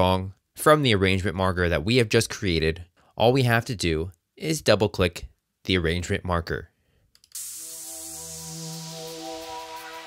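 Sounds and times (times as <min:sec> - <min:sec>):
held synth chord: 0:07.4 - 0:10.0.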